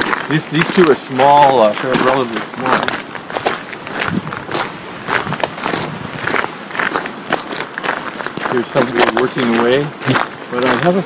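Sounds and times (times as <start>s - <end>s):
footsteps crunching on forest path: 0.0s - 11.0s.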